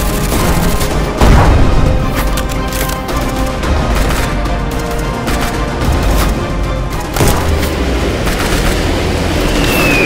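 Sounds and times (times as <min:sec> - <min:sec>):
incoming shell whistle: 0:09.6 - 0:10.0.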